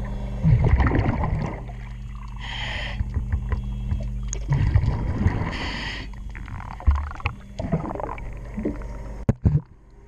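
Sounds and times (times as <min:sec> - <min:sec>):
underwater low hum: 0:00.0 - 0:10.0
clicks and knocks on hull: 0:03.0 - 0:04.4.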